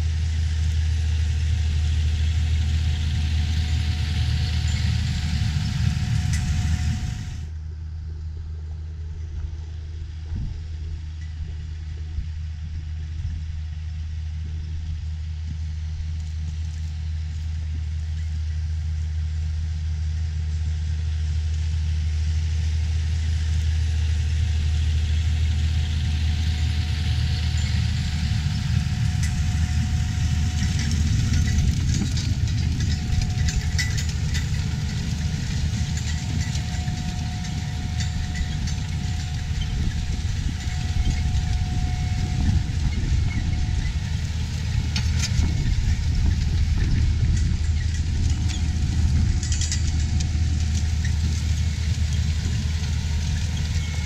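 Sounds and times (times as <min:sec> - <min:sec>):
tractor diesel engine under load: 0:00.0 - 0:12.3, 0:13.9 - 0:54.0.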